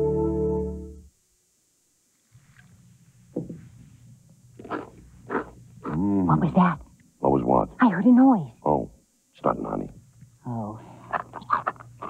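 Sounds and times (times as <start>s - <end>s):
faint low hum: 0.0s - 12.0s
cereal crunching: 4.6s - 5.6s.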